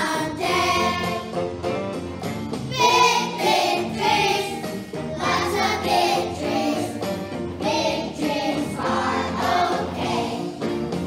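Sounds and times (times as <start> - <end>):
children singing together: 0.0 - 1.3, 2.7 - 10.6
music playing: 0.0 - 11.0.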